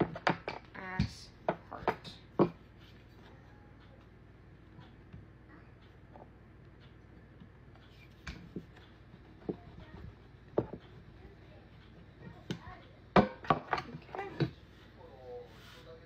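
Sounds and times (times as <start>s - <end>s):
rolling pin on dough: 0.0s - 3.5s, 4.7s - 16.0s.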